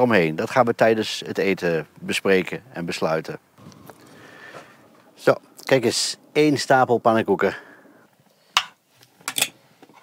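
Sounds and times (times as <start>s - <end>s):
cutlery clinking on a plate: 8.6s - 9.6s.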